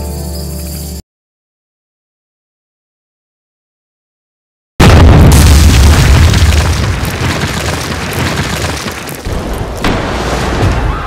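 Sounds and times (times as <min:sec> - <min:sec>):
deep boom impact: 0:04.8 - 0:07.4.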